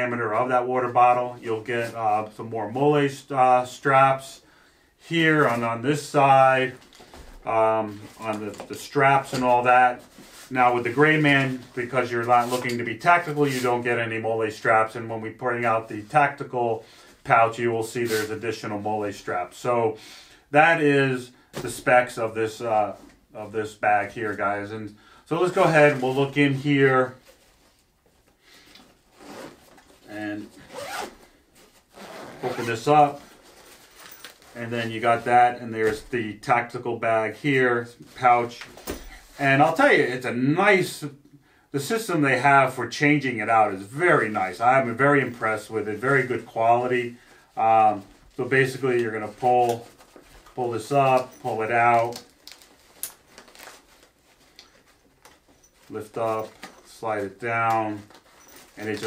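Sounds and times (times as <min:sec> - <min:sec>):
bag rubbing and rustling: 0:29.0 - 0:35.3, 0:44.3 - 0:59.0.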